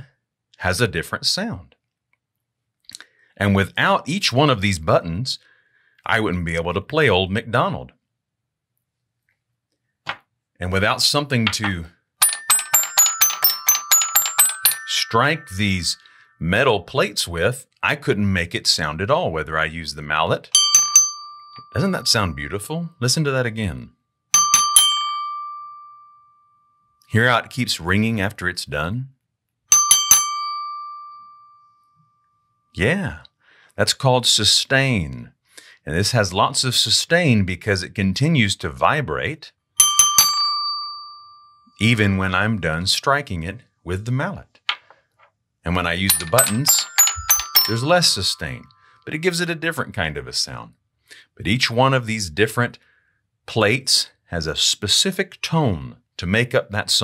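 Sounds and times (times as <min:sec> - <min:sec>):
toy xylophone notes: 0:11.5 - 0:16.2, 0:20.6 - 0:22.5, 0:24.4 - 0:26.0, 0:29.7 - 0:31.4, 0:39.8 - 0:41.0, 0:46.0 - 0:48.6
toy xylophone bar struck: 0:12.2 - 0:16.0, 0:46.1 - 0:48.4.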